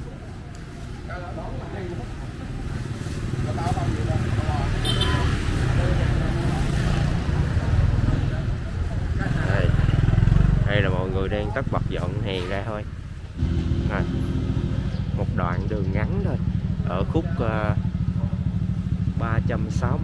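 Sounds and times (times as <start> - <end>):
motorbike engine rumble: 0.0 - 20.0
people talking: 1.0 - 9.9, 10.6 - 12.9, 13.8 - 18.4, 19.2 - 20.0.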